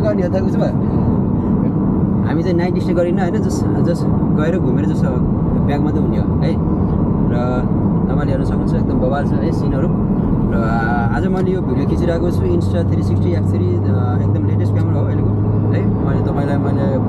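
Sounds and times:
people talking: 0.0s - 0.8s, 2.2s - 6.6s, 7.3s - 17.0s
car cabin road and engine rumble: 0.0s - 17.0s.

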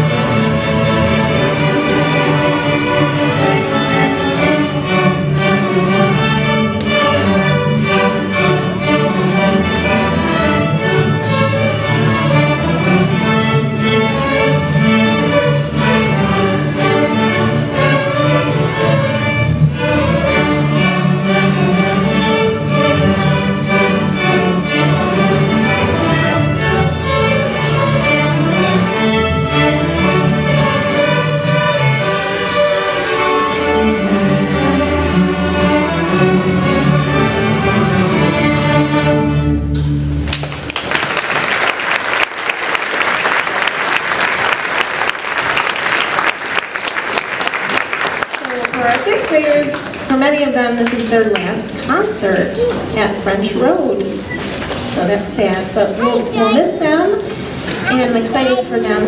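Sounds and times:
string orchestra playing: 0.0s - 59.0s
audience applause: 40.2s - 50.1s.

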